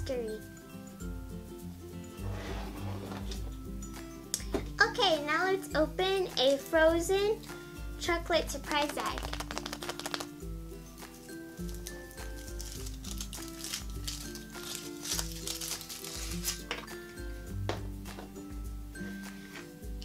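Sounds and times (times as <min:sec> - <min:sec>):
background music with bass line: 0:00.0 - 0:15.4
foil wrapper crinkling: 0:08.8 - 0:10.3, 0:11.6 - 0:16.9.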